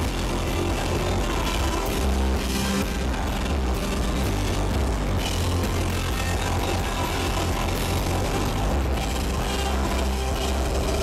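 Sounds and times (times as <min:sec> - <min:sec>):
drum kit: 0:00.0 - 0:11.0
electric guitar: 0:00.0 - 0:11.0
live rock band: 0:00.0 - 0:11.0.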